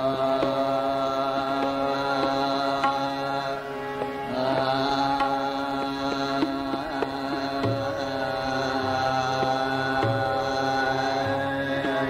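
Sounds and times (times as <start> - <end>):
man singing long notes: 0.0 - 12.0
tabla strokes: 0.0 - 12.0.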